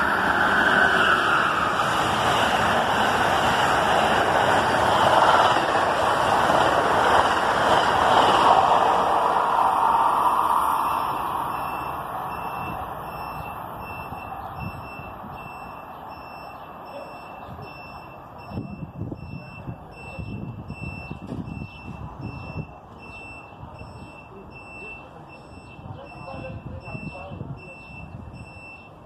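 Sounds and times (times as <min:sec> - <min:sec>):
wind gusting on microphone: 0:00.0 - 0:15.9, 0:17.4 - 0:24.7, 0:25.5 - 0:28.7
passenger train rumble: 0:00.0 - 0:29.0
high electronic beep: 0:10.8 - 0:29.0.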